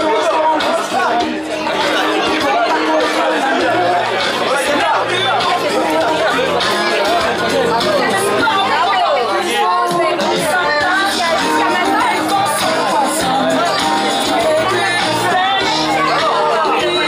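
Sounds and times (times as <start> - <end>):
background music: 0.0 - 17.0
excited party chatter: 0.0 - 17.0.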